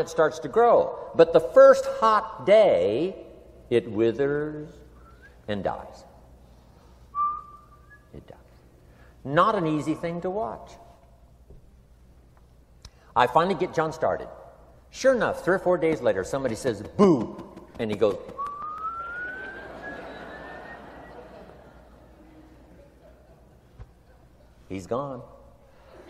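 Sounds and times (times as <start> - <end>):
thin whistle-like tone: 5.0 - 5.4, 7.1 - 8.2, 18.4 - 21.3.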